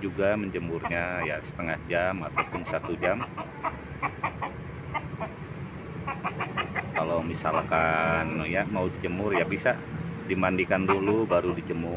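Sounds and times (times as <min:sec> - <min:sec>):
rooster clucking: 0:00.6 - 0:08.4, 0:09.1 - 0:09.8, 0:10.6 - 0:11.9.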